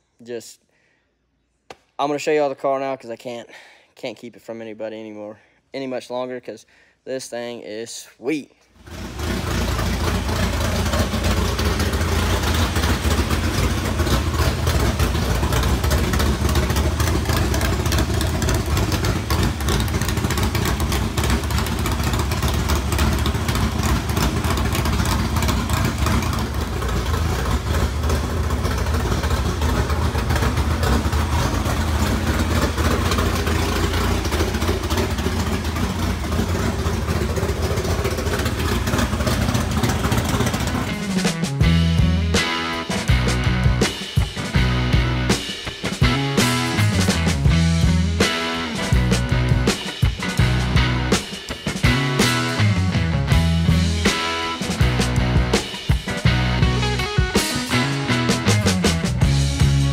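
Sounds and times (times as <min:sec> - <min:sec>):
loud engine running: 0:08.8 - 0:59.9.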